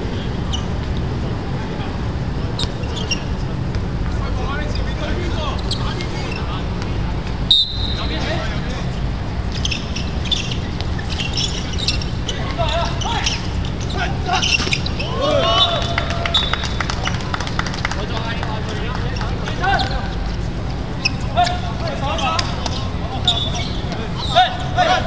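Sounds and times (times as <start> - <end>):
players' voices: 0.0 - 25.0
short high squeaks: 2.6 - 3.4, 5.5 - 6.6, 9.5 - 17.2, 21.0 - 24.6
brief high whistle: 7.5 - 8.0.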